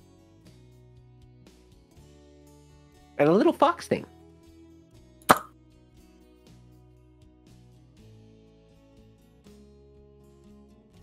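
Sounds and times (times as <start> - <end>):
quiet background music: 0.0 - 11.0
sharp pop: 5.3 - 5.5.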